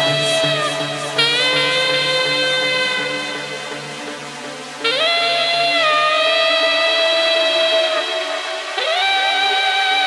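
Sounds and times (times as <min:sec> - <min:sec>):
electronic dance beat: 0:00.0 - 0:04.2
saxophone long note: 0:00.0 - 0:10.0.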